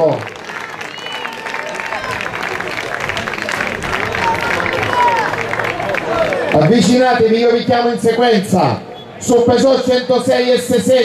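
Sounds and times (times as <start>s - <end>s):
audience applauding: 0.0s - 7.1s
crowd voices: 0.0s - 11.0s.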